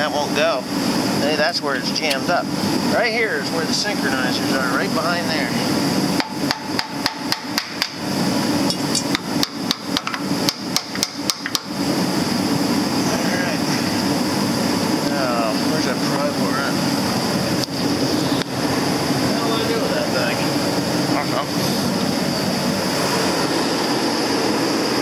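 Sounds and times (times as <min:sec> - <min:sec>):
steady background hum: 0:00.0 - 0:25.0
hammer tapping on metal: 0:06.2 - 0:08.0, 0:08.9 - 0:11.7.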